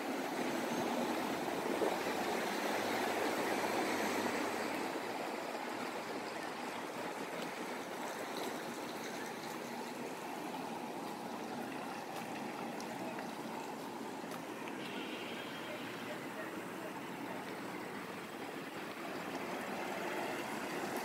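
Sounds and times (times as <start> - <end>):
cars passing close by: 17.7 - 21.0.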